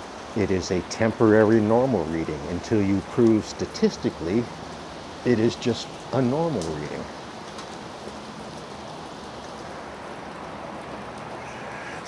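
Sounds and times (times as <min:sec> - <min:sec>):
steady rain falling: 0:00.0 - 0:12.0.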